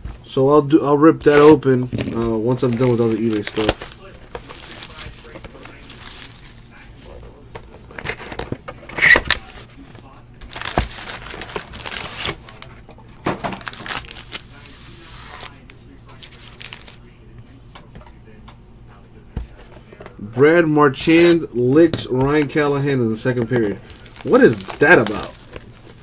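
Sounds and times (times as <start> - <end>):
foil packs crinkling: 1.4 - 7.0, 7.9 - 12.7, 13.3 - 17.0, 21.0 - 26.0.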